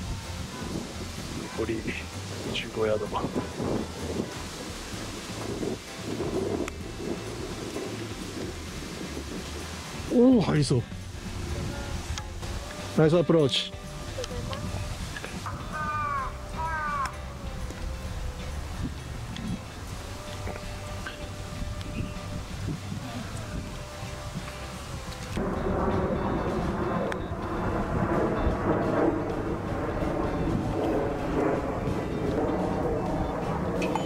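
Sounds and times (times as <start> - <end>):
wind rumbling on microphone: 0.0 - 34.0
bird calling: 15.4 - 17.5.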